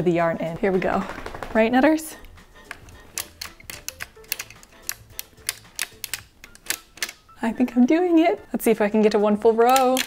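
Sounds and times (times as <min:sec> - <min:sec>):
sock machine needles clicking: 0:00.5 - 0:07.4, 0:09.0 - 0:10.0.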